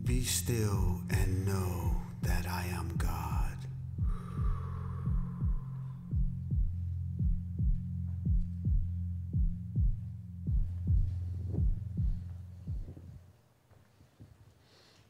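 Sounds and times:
low drone: 0.0s - 12.8s
heartbeat thumps: 0.0s - 13.2s.

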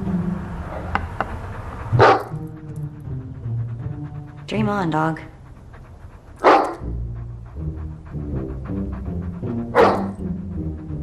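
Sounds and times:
dog barking: 2.0s - 2.4s, 6.4s - 6.9s, 9.7s - 10.2s.

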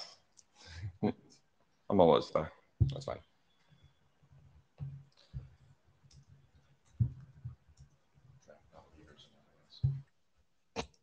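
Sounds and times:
laptop clicks and soft knocks: 4.7s - 8.4s.

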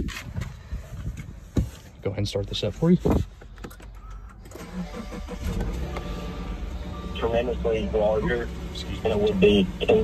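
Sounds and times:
car engine starting and idling: 1.8s - 10.0s.

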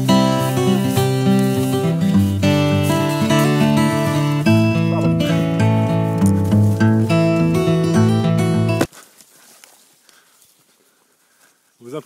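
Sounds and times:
footsteps through tall grass: 0.0s - 12.0s.

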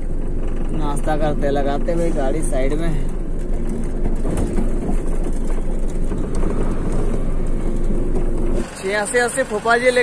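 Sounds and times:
diesel truck engine rumbling: 0.0s - 10.0s.

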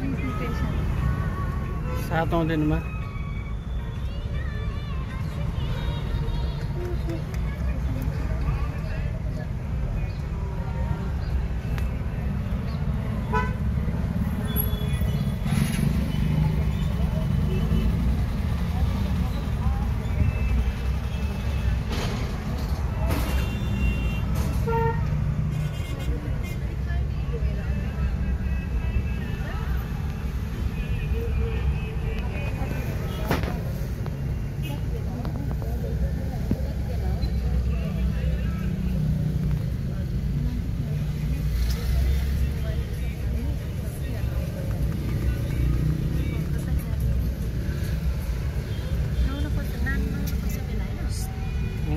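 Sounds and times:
car engine and tyres rumbling: 0.0s - 51.9s.

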